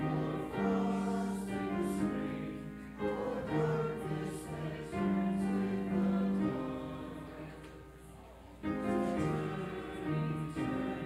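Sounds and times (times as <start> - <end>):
congregation singing a hymn: 0.0 - 11.0
piano accompaniment: 0.0 - 11.0.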